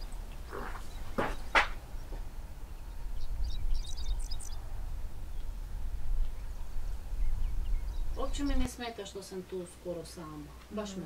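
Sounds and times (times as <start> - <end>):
steady low rumble: 0.0 - 8.7
small birds chirping: 0.0 - 11.0.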